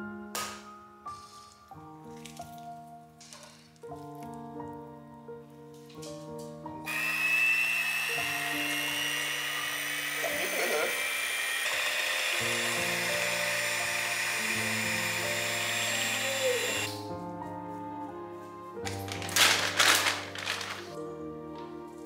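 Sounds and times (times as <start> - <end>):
electric hand mixer whining: 6.9 - 17.0.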